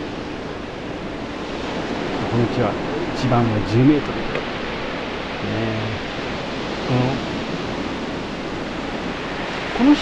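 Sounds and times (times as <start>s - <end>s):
ocean surf breaking on seawall: 0.0s - 10.0s.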